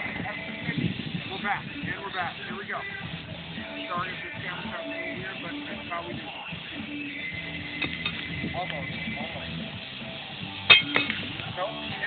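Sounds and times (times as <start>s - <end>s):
music: 0.0s - 12.0s
horseshoe clanking on metal: 10.7s - 11.2s.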